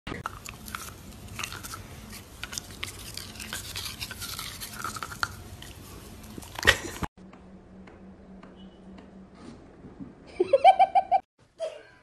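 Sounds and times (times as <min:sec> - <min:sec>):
dog chewing plastic toothbrush: 0:00.2 - 0:07.0.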